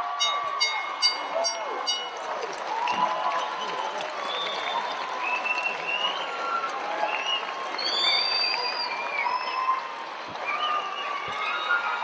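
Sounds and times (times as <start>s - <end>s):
bell ringing: 0.0s - 2.4s
crowd shouting: 0.0s - 3.8s.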